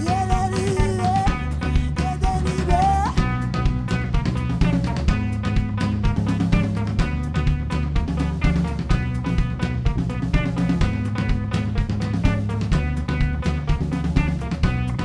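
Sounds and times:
drum kit beat: 0.0 - 15.0
electric bass line: 0.0 - 15.0
electric guitar: 0.0 - 15.0.

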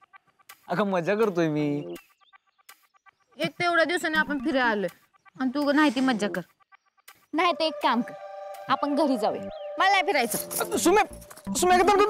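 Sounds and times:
high-pitched voice speaking: 7.4 - 10.4.

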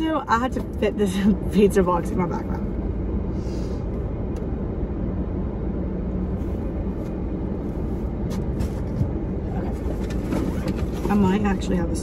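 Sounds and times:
car idling inside cabin: 0.0 - 12.0.

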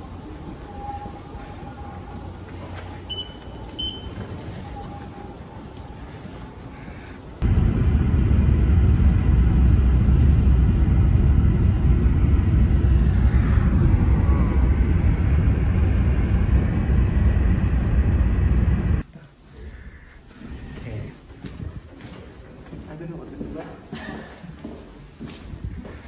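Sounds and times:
quiet ambience: 0.0 - 26.0
vehicle rumble from inside: 7.4 - 19.0.

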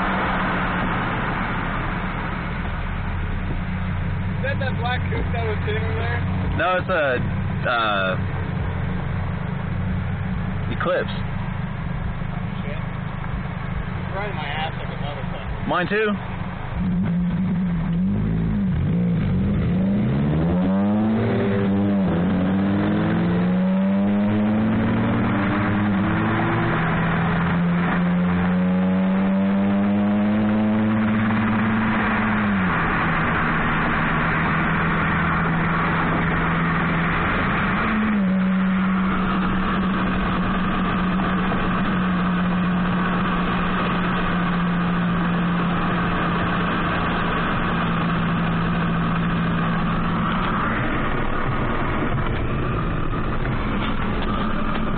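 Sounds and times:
car engine accelerating: 0.0 - 54.9
road and wind noise: 0.0 - 54.9.

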